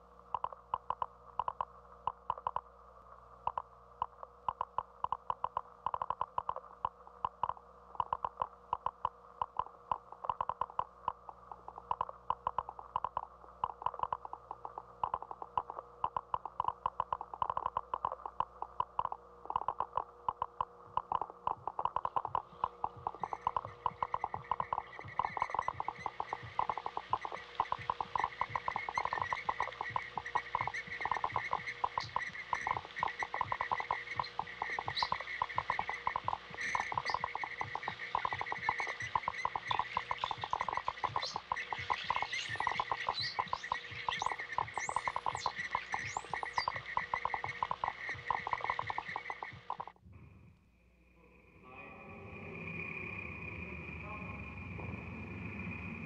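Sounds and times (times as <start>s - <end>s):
rapid pulsing clicking chorus: 0.0s - 50.0s.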